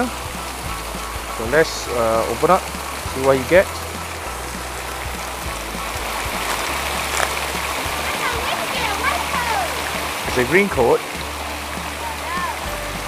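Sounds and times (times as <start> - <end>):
water splashing into pool: 0.0 - 13.0.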